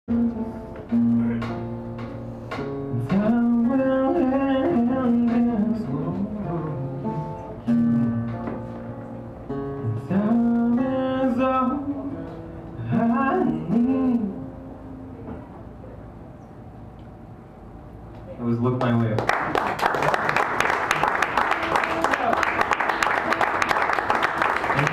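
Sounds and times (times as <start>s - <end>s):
acoustic guitar: 0.1s - 15.9s.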